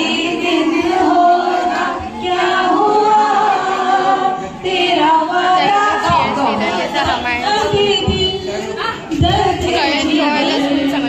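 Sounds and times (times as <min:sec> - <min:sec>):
women singing together: 0:00.0 - 0:11.0.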